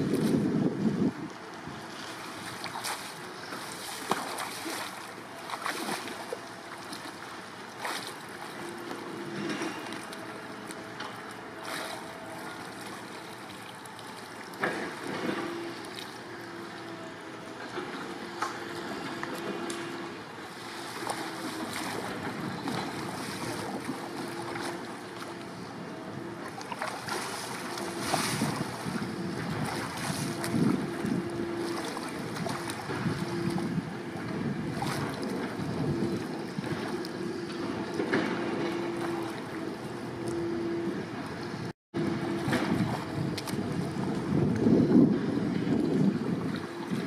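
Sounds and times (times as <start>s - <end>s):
wind on microphone: 0.0s - 5.0s, 18.2s - 47.0s
water splashing and lapping: 0.0s - 47.0s.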